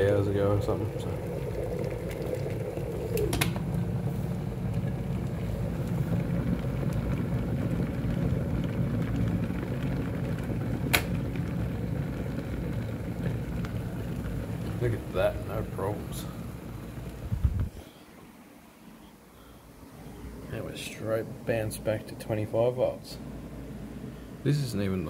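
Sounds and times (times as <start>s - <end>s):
kettle boiling: 0.0s - 25.0s.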